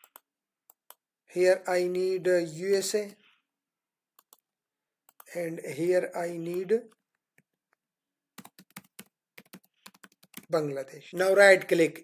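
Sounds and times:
computer mouse clicks: 0:00.0 - 0:01.0, 0:04.2 - 0:04.5.

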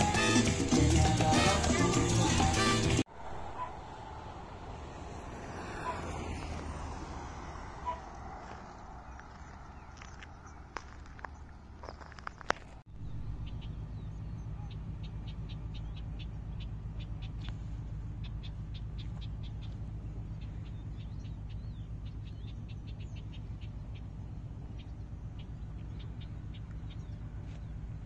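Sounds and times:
small birds chirping: 0:07.8 - 0:28.0.

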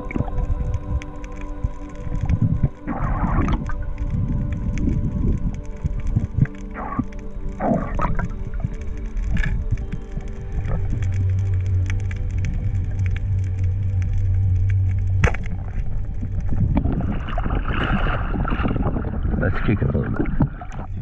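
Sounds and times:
sustained chord music: 0:00.0 - 0:19.0.

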